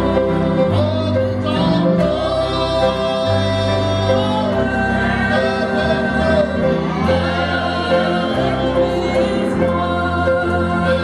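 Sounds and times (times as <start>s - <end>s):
instrumental backing with bass: 0.0s - 11.0s
woman and man singing: 0.2s - 11.0s.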